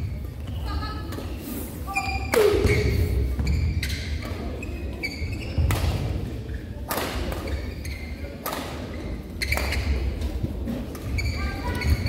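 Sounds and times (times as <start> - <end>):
shoe squeaks: 0.0 - 5.7, 7.4 - 8.3, 8.9 - 10.1, 11.0 - 12.0.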